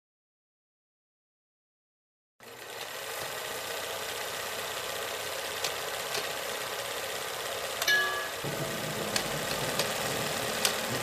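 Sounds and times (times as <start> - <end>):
film projector whirring: 2.4 - 11.0
short tone: 7.9 - 9.1.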